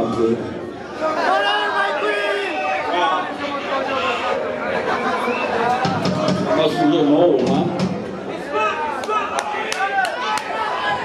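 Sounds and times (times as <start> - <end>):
crowd voices talking and calling: 0.0 - 11.0.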